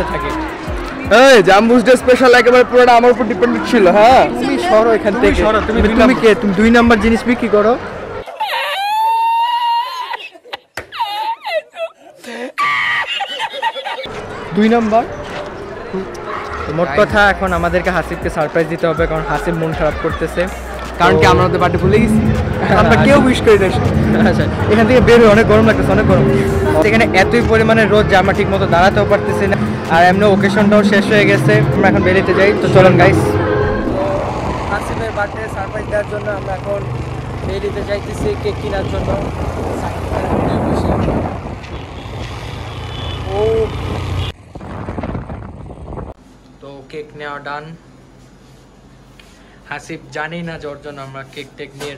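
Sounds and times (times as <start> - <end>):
road noise: 0.0 - 8.3, 13.2 - 51.9
several people talking: 0.0 - 8.3, 14.1 - 41.7
wind on microphone: 39.2 - 42.4, 44.4 - 46.2.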